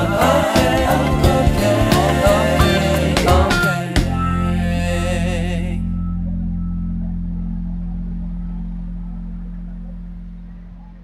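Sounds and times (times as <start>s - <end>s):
background music low chord: 0.0s - 11.0s.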